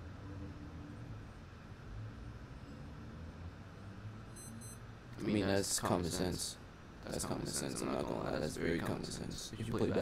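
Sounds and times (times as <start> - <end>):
faint low steady hum: 0.0 - 10.0
high-pitched electronic beeps: 4.3 - 4.8.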